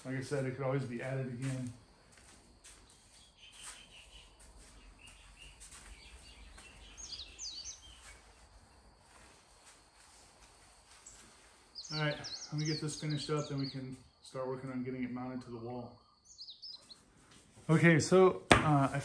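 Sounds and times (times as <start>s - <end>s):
birds chirping: 0.0s - 9.9s, 10.5s - 18.2s.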